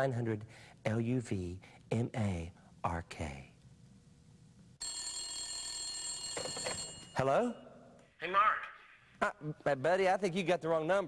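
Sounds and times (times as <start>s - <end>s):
telephone ringing: 4.8s - 7.4s.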